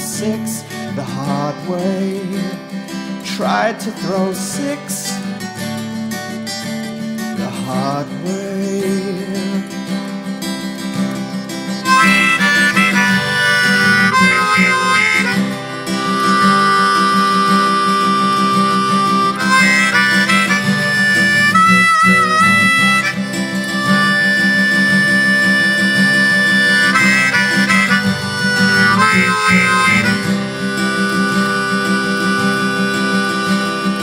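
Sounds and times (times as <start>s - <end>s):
strummed acoustic guitar: 0.0s - 34.0s
harmonica solo: 11.0s - 34.0s.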